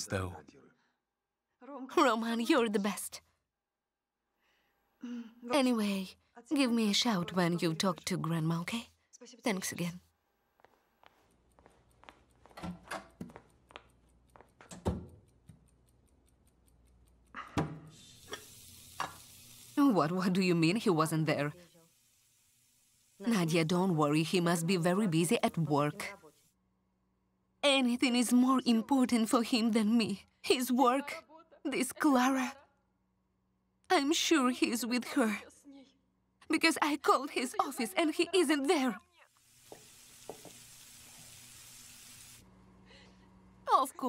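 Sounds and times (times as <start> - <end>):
spatula clicking against pan: 12.3 - 17.5
meatballs sizzling in oil: 17.9 - 26.5, 39.3 - 42.4.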